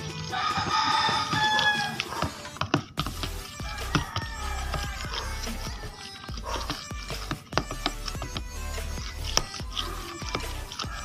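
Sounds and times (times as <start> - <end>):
background music: 0.0 - 11.0
spatula scraping thick batter: 0.0 - 11.0.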